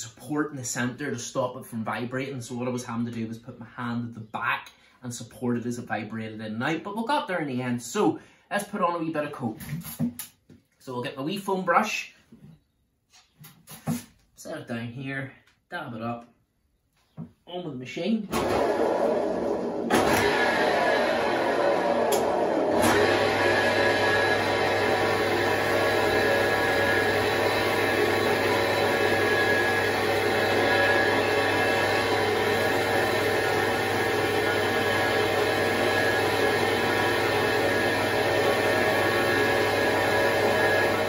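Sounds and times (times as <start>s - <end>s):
wood lathe motor humming: 18.4s - 41.0s.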